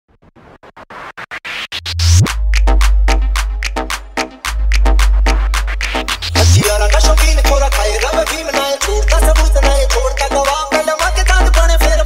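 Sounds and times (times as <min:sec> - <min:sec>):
stuttering chopped scratch sound: 0:00.1 - 0:12.0
deep bass note: 0:01.9 - 0:07.7.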